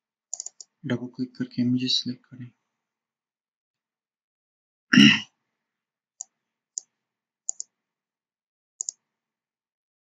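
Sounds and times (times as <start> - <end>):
computer mouse clicking: 0.3 - 0.8, 7.5 - 7.7, 8.8 - 9.0.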